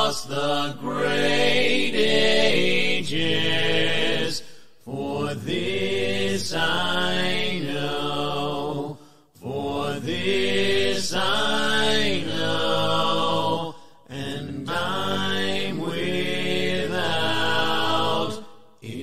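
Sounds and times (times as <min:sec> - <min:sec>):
a cappella hymn singing: 0:00.0 - 0:19.0.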